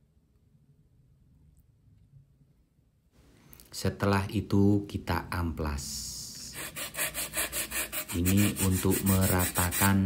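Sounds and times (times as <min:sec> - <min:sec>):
sandpaper scraping: 0:06.5 - 0:10.0.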